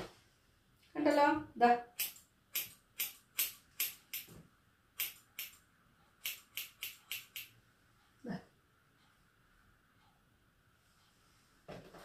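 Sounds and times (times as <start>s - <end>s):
scissors snipping hair: 1.9s - 4.3s, 5.0s - 5.6s, 6.2s - 7.6s.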